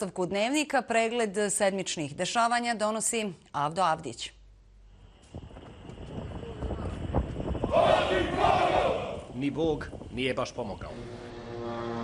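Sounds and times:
crowd shouting in unison: 0:07.7 - 0:09.3.

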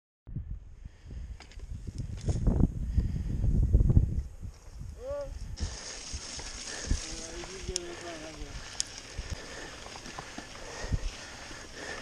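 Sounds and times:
wind buffeting microphone: 0:00.3 - 0:12.0
faint ticks or rustles: 0:05.6 - 0:12.0.

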